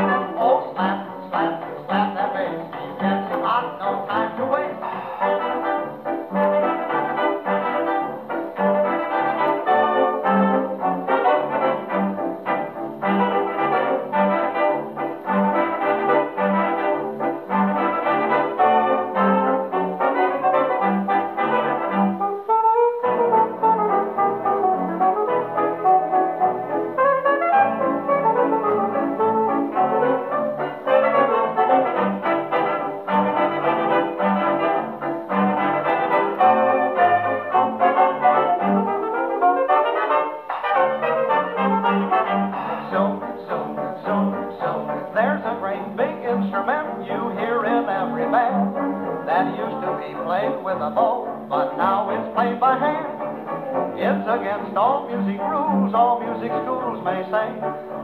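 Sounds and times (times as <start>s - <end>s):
dance band music on gramophone: 0.0s - 24.9s, 28.8s - 58.0s.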